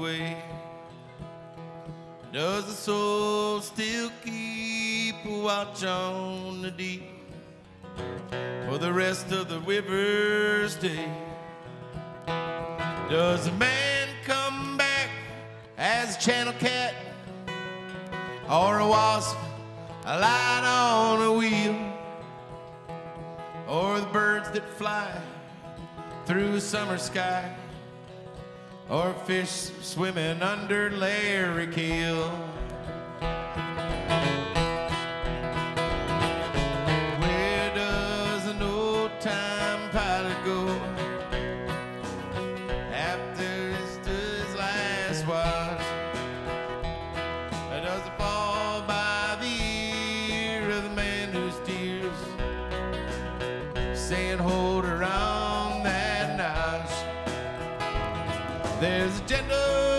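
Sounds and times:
acoustic guitar strumming: 0:00.0 - 0:59.9
electric guitar bending notes: 0:03.0 - 0:59.9
bass and drum beat: 0:32.6 - 0:39.2, 0:40.0 - 0:51.6, 0:52.2 - 0:59.9.

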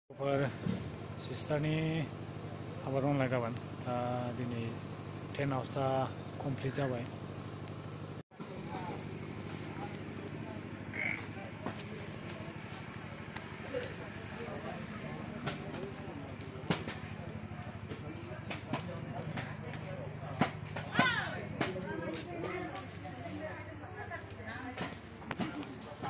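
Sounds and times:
low mechanical hum: 0:00.2 - 0:26.0.

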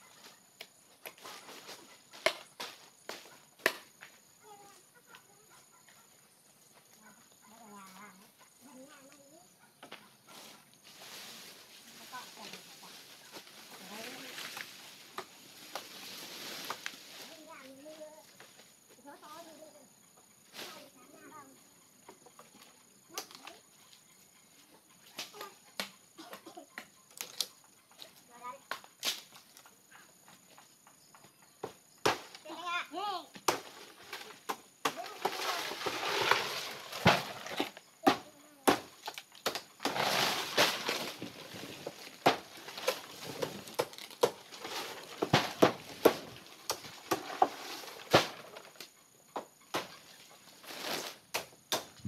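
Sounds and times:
stiff leaves rustling: 0:10.3 - 0:19.4, 0:33.6 - 0:37.8, 0:38.6 - 0:48.8, 0:49.7 - 0:51.3
blade chopping leaf stalks: 0:33.5 - 0:48.7.

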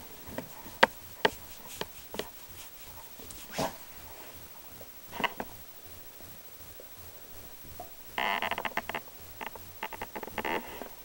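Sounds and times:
dog vocalizing: 0:00.4 - 0:04.3.

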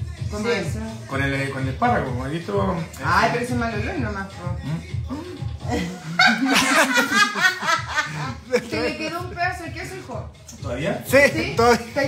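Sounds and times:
woman laughing heartily: 0:05.6 - 0:08.8.

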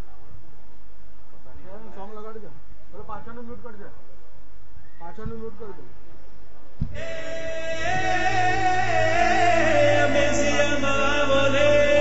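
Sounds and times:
steady low hum: 0:05.8 - 0:12.0.

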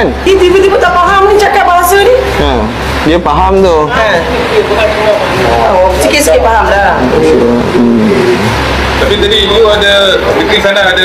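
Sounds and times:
steady low hum: 0:00.0 - 0:11.0
person speaking: 0:07.0 - 0:08.6.

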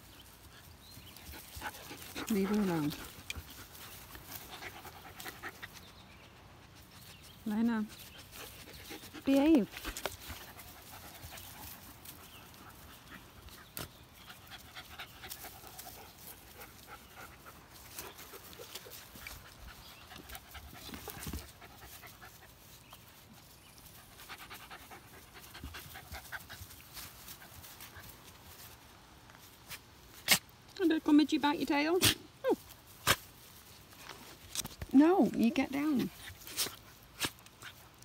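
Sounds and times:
dog panting: 0:00.5 - 0:22.6, 0:24.0 - 0:28.2.

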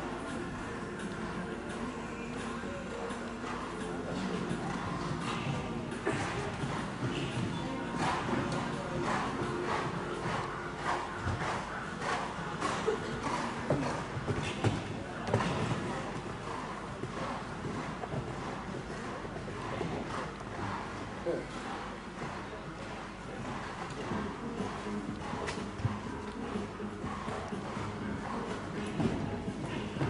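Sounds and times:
voices in a hall: 0:00.0 - 0:30.0
horse hooves thudding on sand: 0:03.0 - 0:21.2, 0:22.2 - 0:30.0.

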